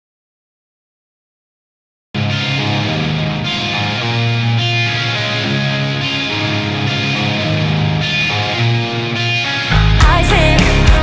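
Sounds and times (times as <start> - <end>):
electric guitar picking notes: 2.2 - 11.0
rock song: 2.2 - 11.0.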